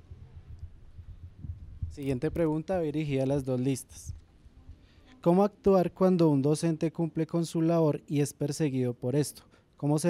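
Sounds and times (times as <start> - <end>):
microphone handling rumble: 0.0 - 4.6.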